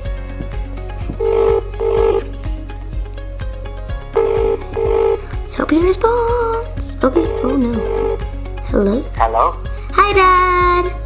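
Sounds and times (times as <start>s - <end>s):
background music with steady beat: 0.0s - 11.0s
phone ringback tone beeps: 1.2s - 2.2s, 7.2s - 8.2s.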